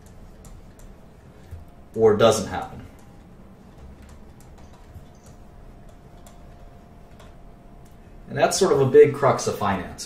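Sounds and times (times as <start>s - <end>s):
faint steady hum: 0.0s - 10.0s
computer input device clicking: 2.8s - 8.0s.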